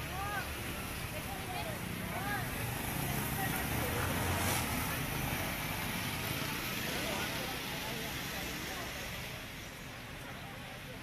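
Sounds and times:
faint indistinct voices: 0:00.0 - 0:11.0
street traffic: 0:00.0 - 0:11.0.

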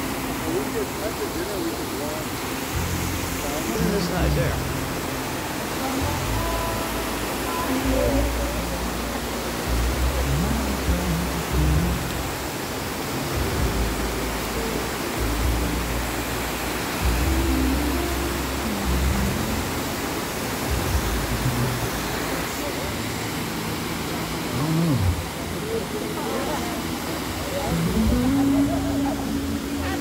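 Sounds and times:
waterfall rushing over rocks: 0:00.0 - 0:30.0.

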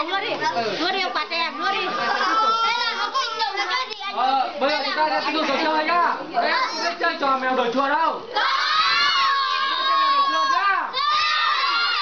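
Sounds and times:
children shouting: 0:08.3 - 0:12.0.

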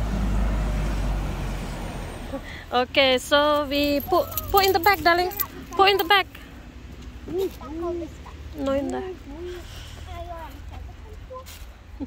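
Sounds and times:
bus passing close by: 0:00.0 - 0:10.7
road traffic rumbling: 0:00.0 - 0:12.0.

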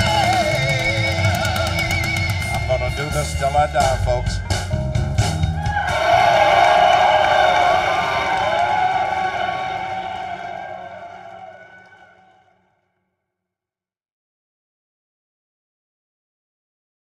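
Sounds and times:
band hits on drums and guitar: 0:00.0 - 0:09.0.

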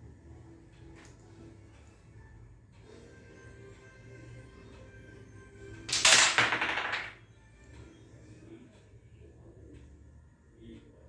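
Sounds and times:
carrom pieces clattering: 0:05.9 - 0:07.2.

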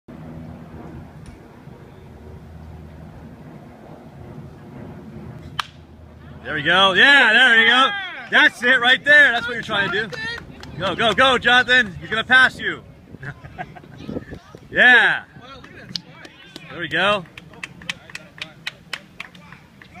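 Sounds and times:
bat cracking against ball: 0:05.4 - 0:05.8.

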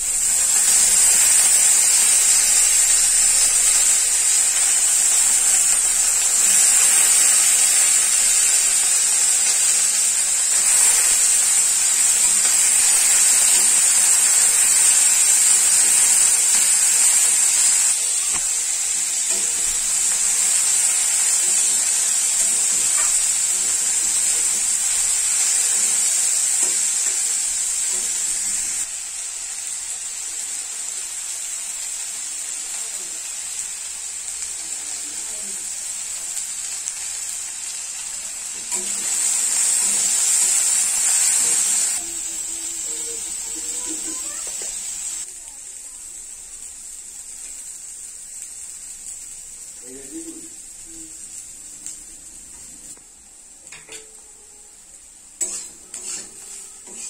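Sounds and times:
vegetables sizzling in hot oil: 0:00.0 - 0:57.0.

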